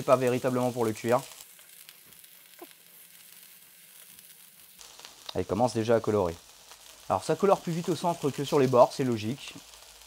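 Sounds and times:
chicken sizzling in a frying pan: 0:00.0 - 0:10.0.

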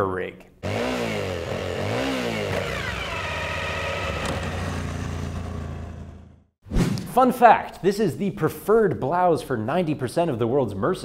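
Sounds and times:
motorcycle engine revving: 0:00.6 - 0:06.6.

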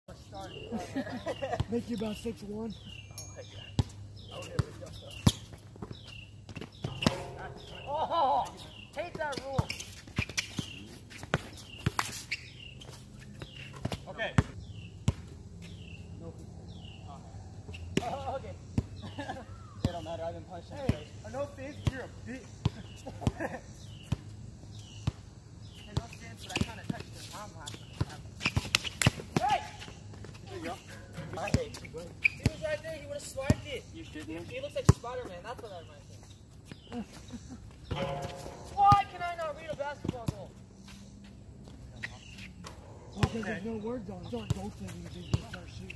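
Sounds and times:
basketball bouncing on court: 0:06.8 - 0:07.9.

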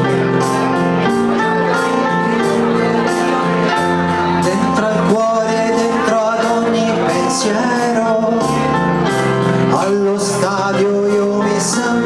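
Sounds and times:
amplified instrumental accompaniment: 0:00.0 - 0:12.0
man singing into microphone: 0:02.1 - 0:12.0.

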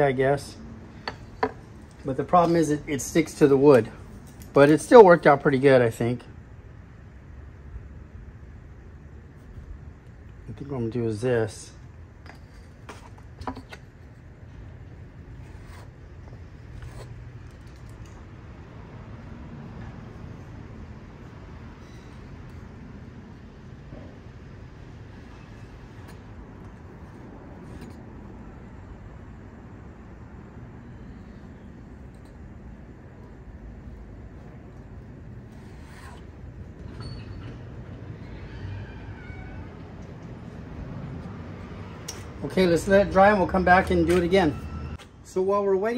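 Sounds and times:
low outdoor rumble: 0:00.0 - 0:45.9.

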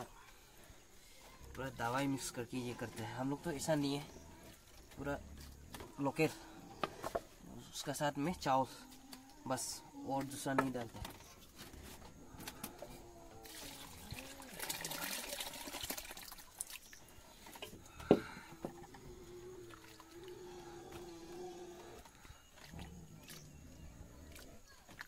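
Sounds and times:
water pouring and sloshing: 0:10.3 - 0:21.2, 0:21.8 - 0:25.0.

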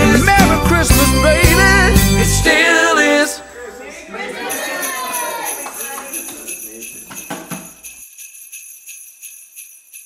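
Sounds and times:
music and voices: 0:00.0 - 0:07.1
jingle bells shaken: 0:04.4 - 0:10.0.

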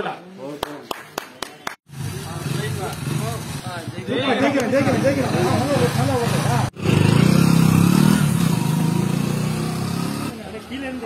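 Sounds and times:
motorcycle engine running: 0:01.9 - 0:10.3.

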